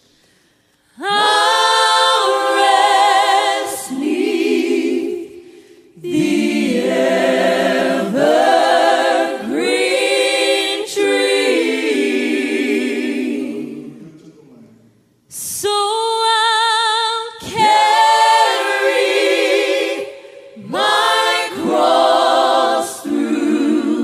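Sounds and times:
voices singing in harmony: 0.9 - 14.7, 15.4 - 24.0.

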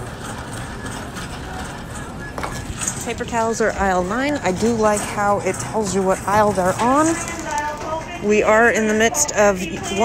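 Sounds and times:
shopping cart rolling: 0.0 - 10.0.

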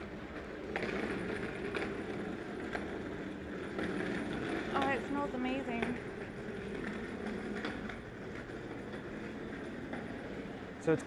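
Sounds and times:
suitcase wheels rumbling on concrete: 0.0 - 11.0.

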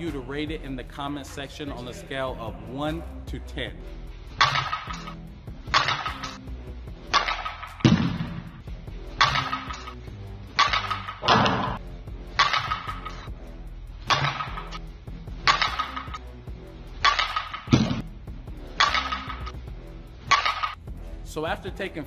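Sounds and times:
background music: 0.0 - 22.0
softball bat hitting ball: 4.4 - 5.1, 5.7 - 6.4, 9.2 - 9.9, 10.6 - 11.8, 12.4 - 13.1, 14.1 - 14.7, 15.4 - 16.2, 18.8 - 19.5.

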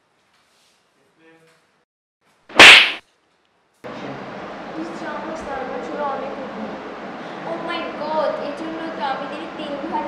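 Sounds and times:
loud sharp slap: 2.5 - 3.0.

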